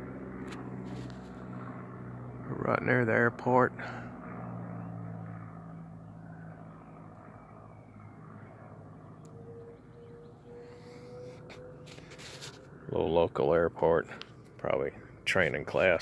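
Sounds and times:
light aircraft engine drone: 0.0 - 16.0.

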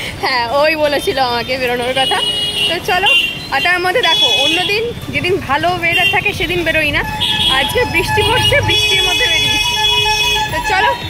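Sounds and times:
road traffic rumble: 0.0 - 11.0
woman talking: 0.2 - 9.6, 10.6 - 11.0.

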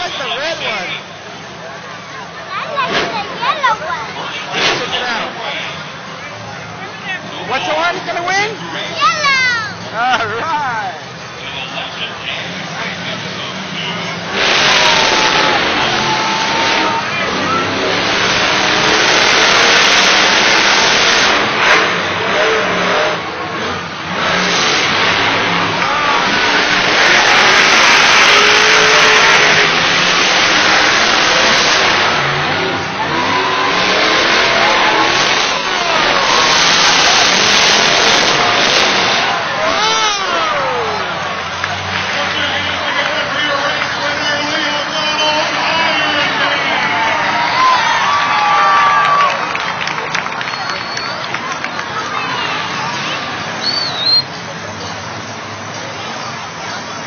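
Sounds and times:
monster truck engines revving: 0.0 - 57.0
stadium crowd din: 0.0 - 57.0.

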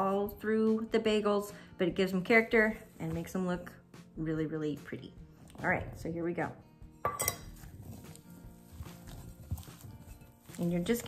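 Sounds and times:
metal cup clinking on glass bowl: 7.0 - 7.6.

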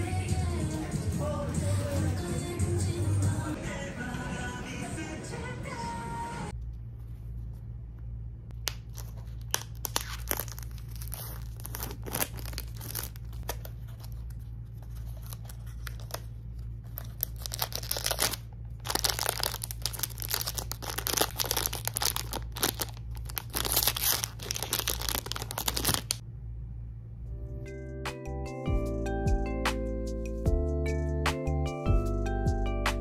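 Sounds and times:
foil wrapper crinkling and tearing: 8.7 - 26.2.

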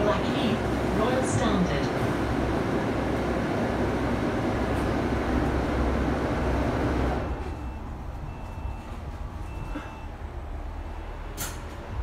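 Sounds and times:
bus engine and road noise: 0.0 - 12.0.

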